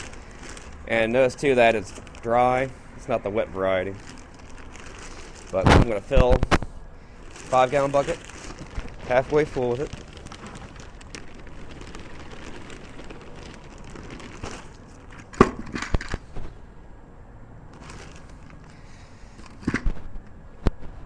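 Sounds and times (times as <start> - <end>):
peat moss pouring rustle: 0.0 - 6.4, 7.0 - 15.3, 17.7 - 19.0
plastic bag crinkling: 0.0 - 16.2, 17.7 - 19.7.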